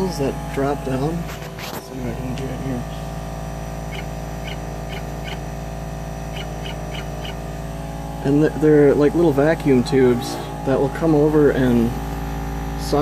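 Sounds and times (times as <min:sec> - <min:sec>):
vacuum pump humming: 0:00.0 - 0:13.0.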